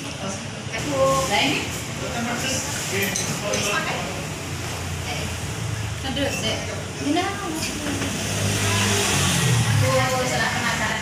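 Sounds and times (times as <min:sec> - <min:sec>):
vehicle engine revving: 0:07.9 - 0:11.0.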